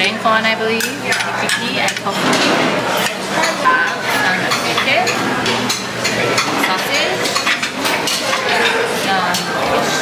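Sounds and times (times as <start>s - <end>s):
background chatter: 0.0s - 10.0s
dishes and cutlery clinking: 0.8s - 10.0s.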